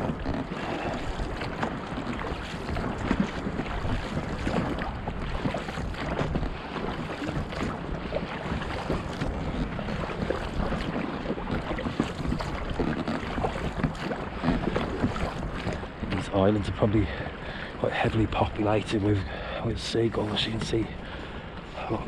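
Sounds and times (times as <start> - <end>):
water slapping against boat hull: 0.0 - 22.0
wind buffeting microphone: 0.0 - 22.0.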